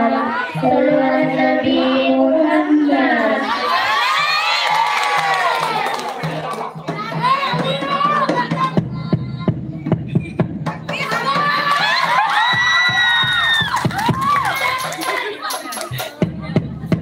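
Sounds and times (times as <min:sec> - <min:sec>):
girls singing together: 0:00.0 - 0:04.5.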